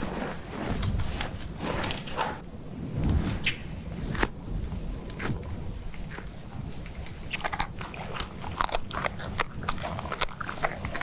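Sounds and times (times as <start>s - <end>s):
tiger chewing carcass: 4.1s - 11.0s.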